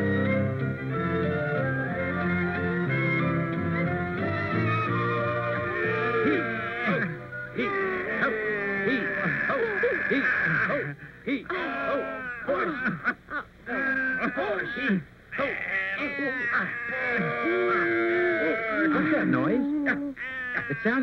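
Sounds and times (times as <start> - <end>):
cartoon voices vocalizing: 4.5 - 21.0.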